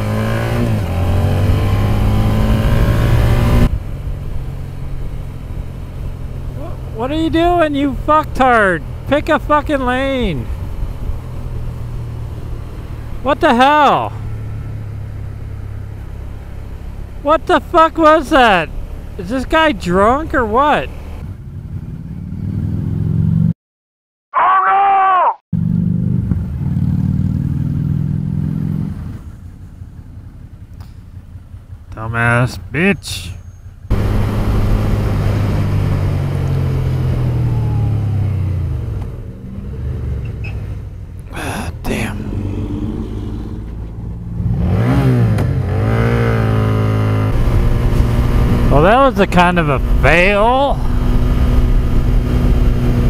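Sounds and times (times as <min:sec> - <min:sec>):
motorcycle engine drone: 0:00.0 - 0:23.5, 0:25.6 - 0:53.0.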